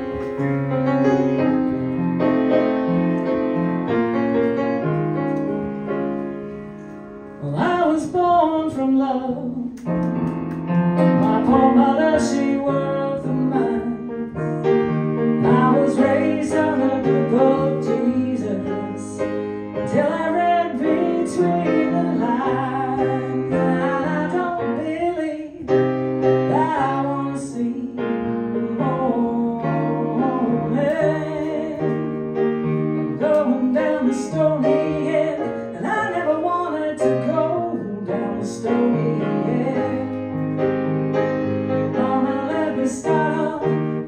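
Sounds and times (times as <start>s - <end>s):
piano chords: 0.0s - 44.0s
woman singing: 7.4s - 9.8s, 11.2s - 14.4s, 15.4s - 25.8s, 26.4s - 32.0s, 33.1s - 40.2s, 41.9s - 44.0s.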